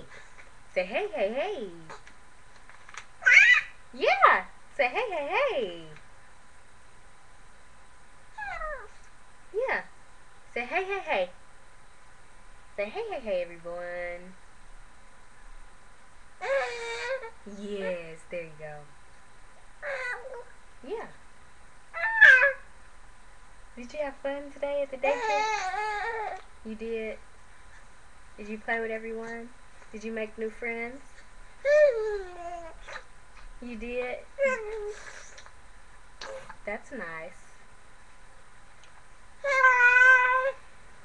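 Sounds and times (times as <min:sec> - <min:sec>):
baby squealing: 0:03.2 - 0:03.8, 0:16.4 - 0:17.3, 0:22.0 - 0:22.6, 0:39.4 - 0:40.6
baby cooing: 0:16.4 - 0:17.3, 0:39.4 - 0:40.6.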